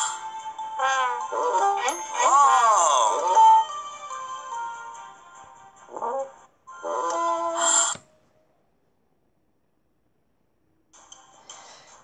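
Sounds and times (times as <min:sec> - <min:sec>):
faint background music: 0:00.0 - 0:08.8, 0:10.7 - 0:12.0
cartoon voice gliding in pitch: 0:00.8 - 0:03.7.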